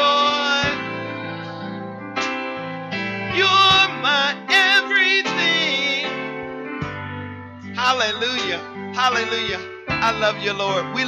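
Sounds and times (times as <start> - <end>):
gospel praise team singing: 0.0 - 6.5
instrumental accompaniment: 0.0 - 11.0.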